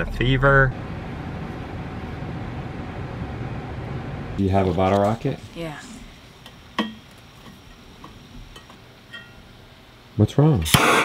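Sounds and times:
short ringing clink: 8.6 - 9.5.

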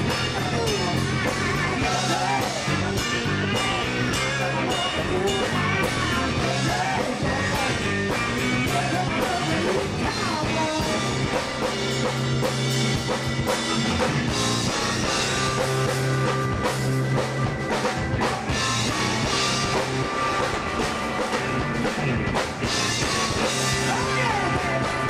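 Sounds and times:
drum kit: 0.0 - 25.0
electric bass line: 0.0 - 25.0
electric guitar: 0.0 - 25.0.

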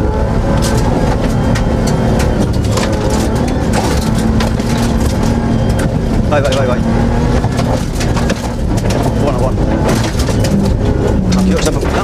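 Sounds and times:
loud car engine: 0.0 - 12.0
stones knocking chassis: 0.6 - 12.0
tyres on gravel: 0.6 - 12.0.

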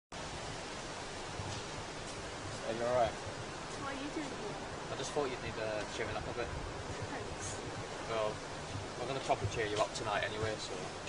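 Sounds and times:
even hiss: 1.4 - 11.0.

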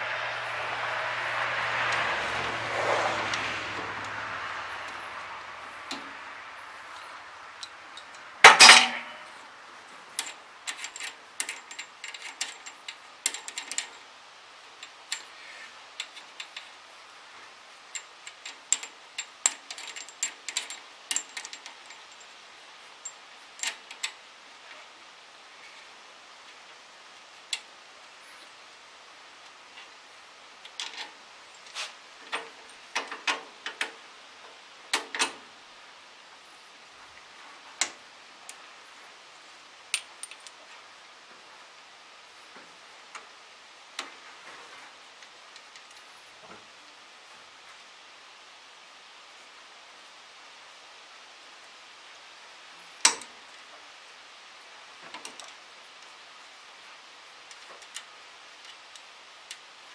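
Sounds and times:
wrench clinking on metal bolts: 7.6 - 9.3, 10.2 - 14.0, 17.9 - 22.3.

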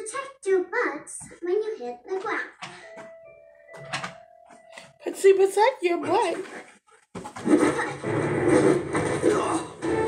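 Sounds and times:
held musical tone: 2.8 - 5.9.

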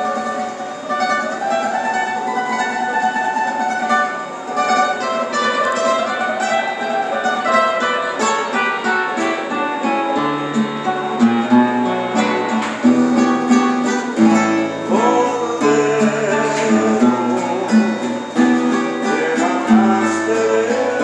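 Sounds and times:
acoustic guitar plucked melody: 0.0 - 21.0.

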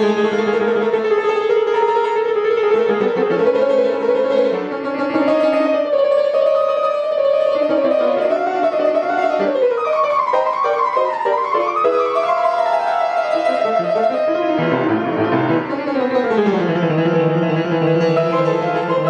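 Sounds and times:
player piano playing: 0.0 - 19.0
recorded accompaniment: 0.0 - 19.0
wavering melody line: 7.4 - 19.0.

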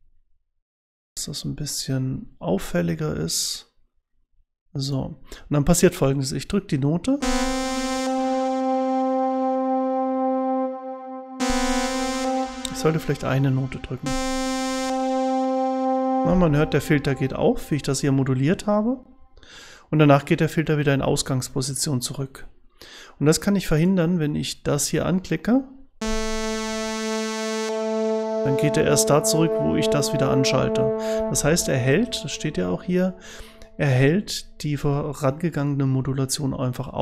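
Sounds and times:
synthesizer note: 7.2 - 19.1, 26.0 - 35.3.

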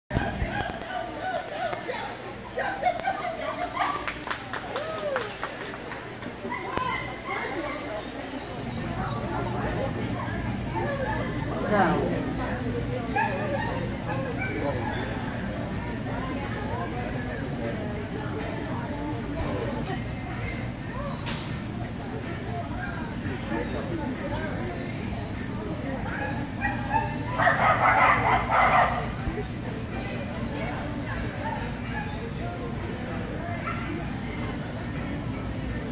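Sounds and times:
people chattering in a hall: 0.1 - 35.9.

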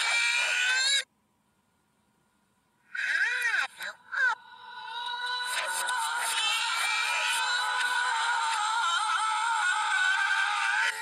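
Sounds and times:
high-pitched cartoon voice: 2.9 - 4.4.

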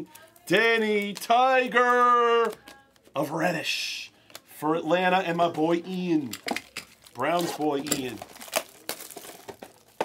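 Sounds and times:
wrapper crinkling: 0.0 - 3.2, 5.4 - 10.0.

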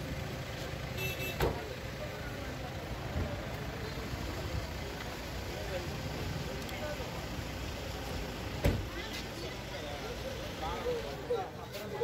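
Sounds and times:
vehicle engines rumbling: 0.0 - 12.0
faint voices: 0.1 - 12.0.

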